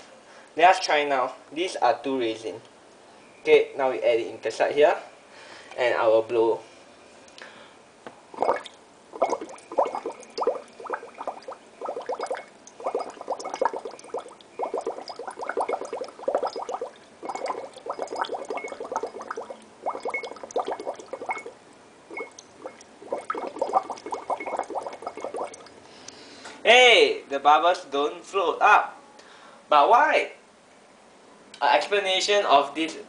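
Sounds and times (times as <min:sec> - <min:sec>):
air bubbling through straw in water: 0:08.4 - 0:25.8.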